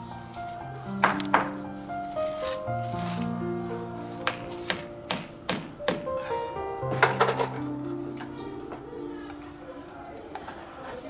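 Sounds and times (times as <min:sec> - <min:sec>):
background music with sustained notes: 0:00.0 - 0:11.0.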